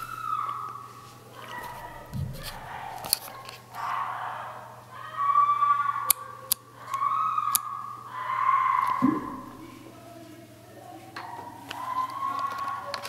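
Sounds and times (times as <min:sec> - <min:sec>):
sharp knocks: 0:02.1 - 0:02.8, 0:09.0 - 0:09.6
muffled girl screaming: 0:03.8 - 0:09.6.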